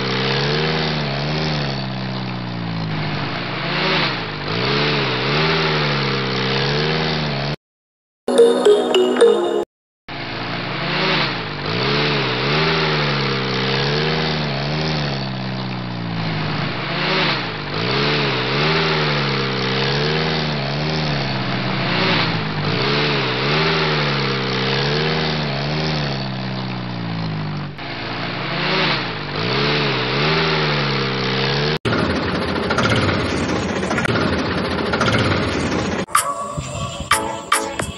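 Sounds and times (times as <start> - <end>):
tractor engine revving: 0.0 - 7.5, 10.2 - 37.9
rough noisy engine: 0.0 - 7.6, 10.1 - 36.1.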